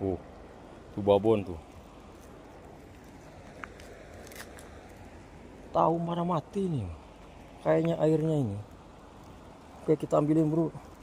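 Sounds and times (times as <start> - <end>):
small stream flowing: 0.0 - 11.0.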